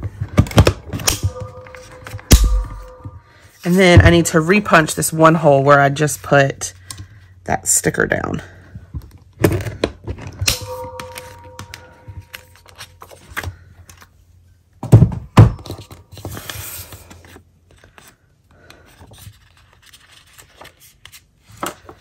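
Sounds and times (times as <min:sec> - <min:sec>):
paper rustling: 0:18.8 - 0:22.0.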